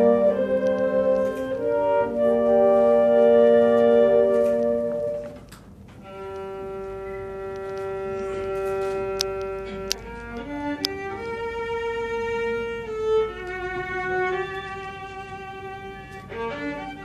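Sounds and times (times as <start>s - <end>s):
solo violin playing: 6.0s - 17.0s.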